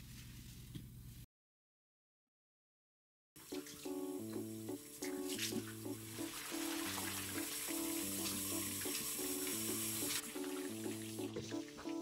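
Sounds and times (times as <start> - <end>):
background music: 3.4 - 12.0
faucet running into sink: 3.4 - 12.0.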